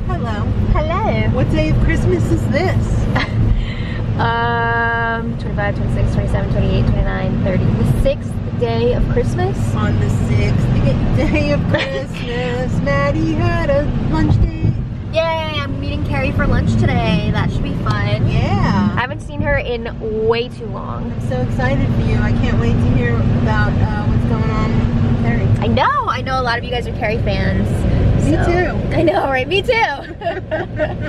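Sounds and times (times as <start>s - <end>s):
woman talking: 0.0s - 3.2s, 4.1s - 12.2s, 15.2s - 31.0s
car cabin road hum: 0.0s - 31.0s.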